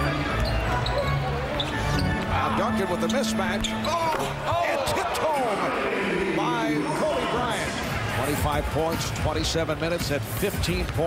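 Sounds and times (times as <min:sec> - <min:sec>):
arena music: 0:00.0 - 0:09.8.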